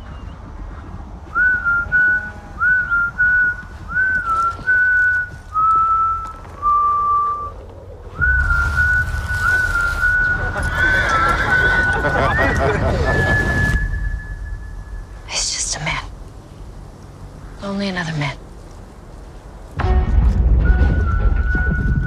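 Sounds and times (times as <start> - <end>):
low rumble and hiss: 0.0 - 22.0
person whistling a slow tune: 1.3 - 7.6, 8.2 - 15.0, 20.5 - 22.0.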